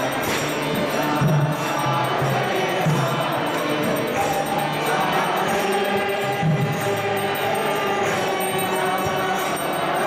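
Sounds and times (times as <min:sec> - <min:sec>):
group chanting: 0:00.0 - 0:10.0
hand cymbals: 0:00.0 - 0:10.0
ringing bells: 0:00.0 - 0:10.0.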